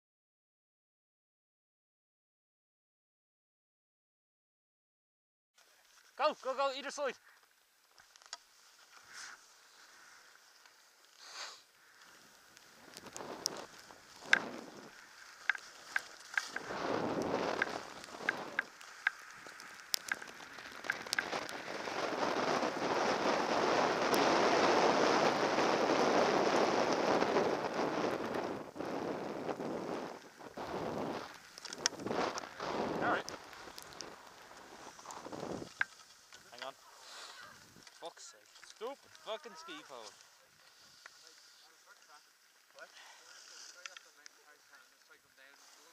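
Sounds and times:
skis sliding over snow: 5.6 - 45.9
wind on microphone: 12.6 - 15.2, 16.4 - 35.8.

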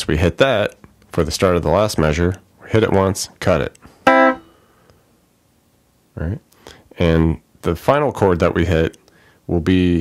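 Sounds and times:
electric guitar chord strummed: 4.1 - 4.6.

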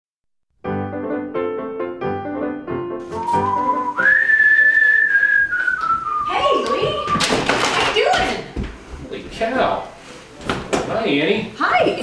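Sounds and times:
man whistling a tune: 3.1 - 6.3.

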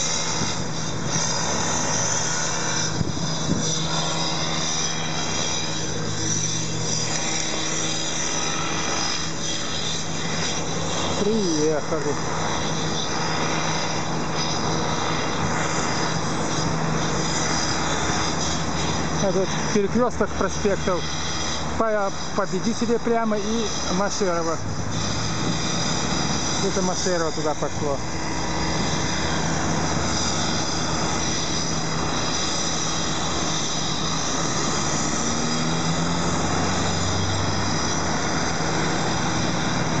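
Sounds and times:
car engines idling and running: 0.0 - 40.0
city traffic: 0.0 - 40.0
vehicle engine pulling away: 34.3 - 40.0.

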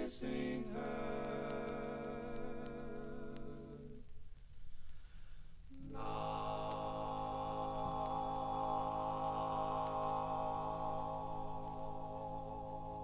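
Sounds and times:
male vocal quartet holding chord: 0.0 - 4.0, 5.8 - 13.0.

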